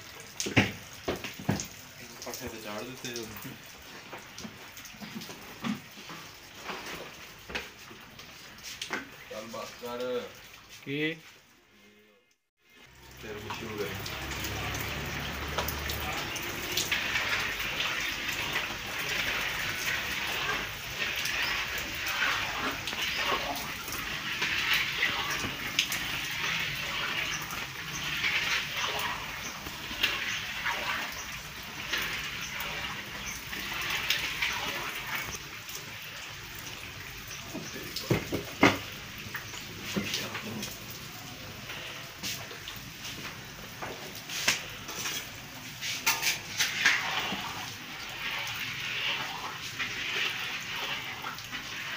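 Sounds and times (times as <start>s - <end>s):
dough balls frying in oil: 0.0s - 11.6s, 12.4s - 51.9s.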